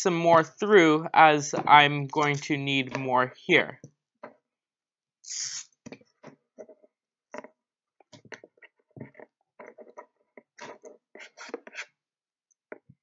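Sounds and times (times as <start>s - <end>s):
strap sliding hiss: 5.3s - 5.7s.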